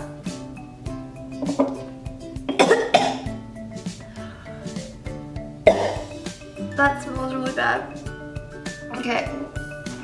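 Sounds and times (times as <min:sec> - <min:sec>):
background music: 0:00.0 - 0:10.0
girl coughing and gagging: 0:02.5 - 0:03.3, 0:05.7 - 0:06.1.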